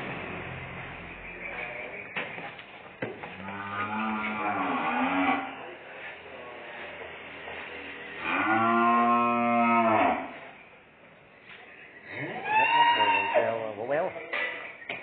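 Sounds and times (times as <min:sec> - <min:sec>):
young cattle mooing: 0:03.4 - 0:05.6, 0:08.2 - 0:10.5, 0:12.1 - 0:13.8.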